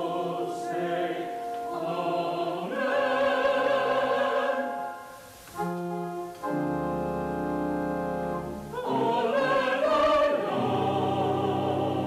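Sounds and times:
choir singing: 0.0s - 5.1s, 8.4s - 12.0s
organ chords: 0.0s - 12.0s.

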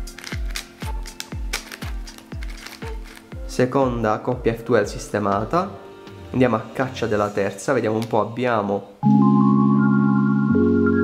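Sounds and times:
electronic music with kick drum: 0.0s - 5.6s, 9.0s - 11.0s.

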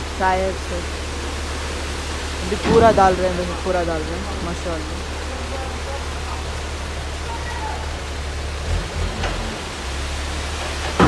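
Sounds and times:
asphalt pouring from truck: 0.0s - 11.0s
truck engine humming: 0.0s - 11.0s.

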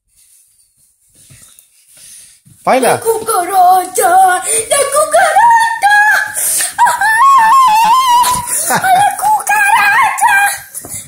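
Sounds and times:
boy panting: 1.2s - 2.5s, 4.2s - 4.9s, 6.2s - 9.2s, 10.3s - 11.0s.

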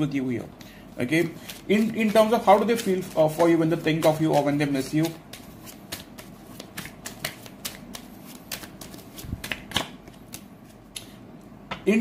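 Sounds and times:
cards being shuffled: 1.0s - 11.1s.

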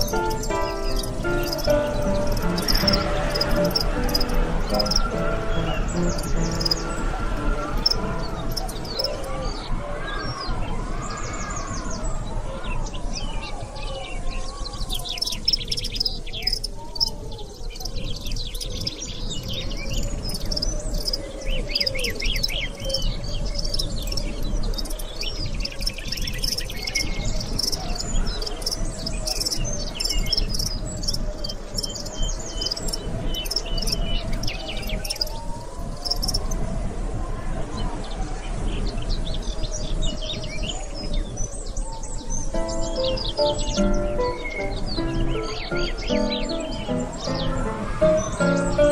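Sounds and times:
soft wandering melody: 0.0s - 10.9s, 42.2s - 48.9s
small birds chirping: 0.0s - 36.6s, 37.8s - 48.9s.

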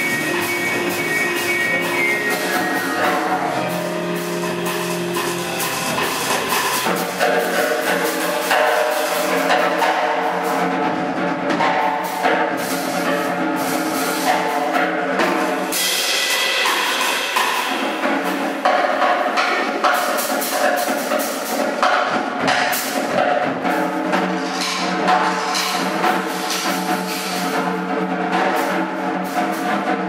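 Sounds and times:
double bass: 0.0s - 8.5s
drum kit with cymbals: 0.0s - 30.0s
stage piano chords: 0.0s - 30.0s.

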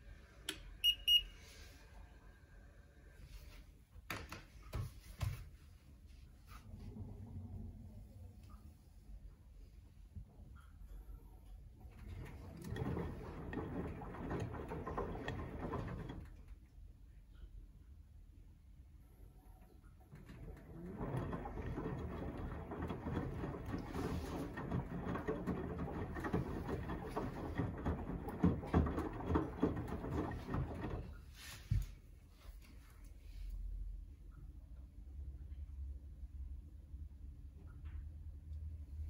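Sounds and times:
washing machine drum tumbling: 11.8s - 16.6s, 19.9s - 31.3s.

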